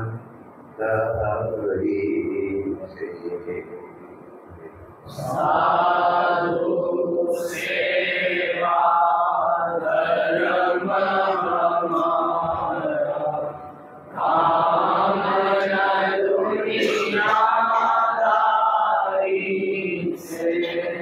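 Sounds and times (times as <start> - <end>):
mantra chanting: 0.0 - 0.2, 0.8 - 3.9, 5.0 - 21.0.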